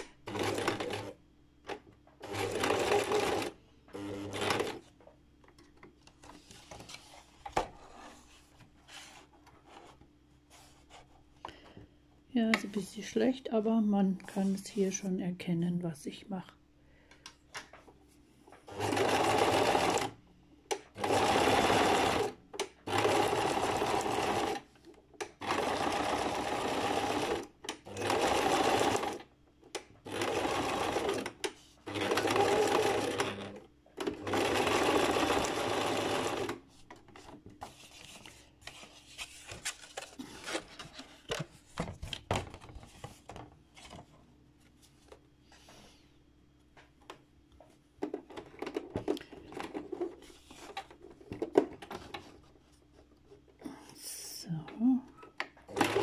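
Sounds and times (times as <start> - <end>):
sewing machine stitching: 0.0 - 1.2, 2.2 - 4.8, 18.7 - 20.1, 20.9 - 24.7, 25.4 - 29.2, 30.0 - 36.6, 55.7 - 56.0.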